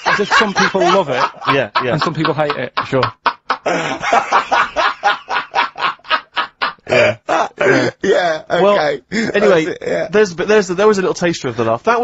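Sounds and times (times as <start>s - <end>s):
man's deep belly laugh: 0.0s - 8.5s.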